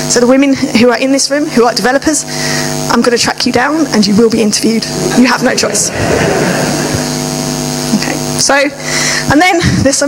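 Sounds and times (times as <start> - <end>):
electrical hum: 0.0 - 10.0
audience laughing: 4.8 - 7.4.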